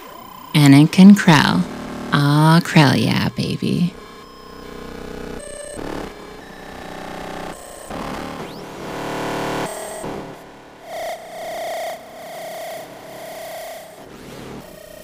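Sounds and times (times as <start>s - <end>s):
modular synthesizer tones: 0.0s - 14.0s.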